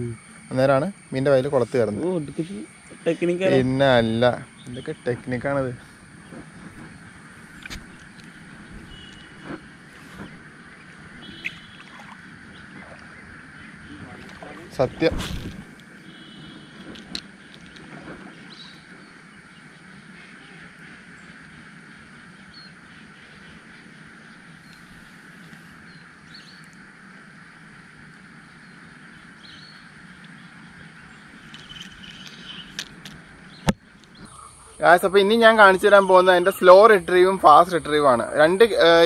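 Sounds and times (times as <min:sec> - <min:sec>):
faint steady drone: 0:00.0 - 0:39.0.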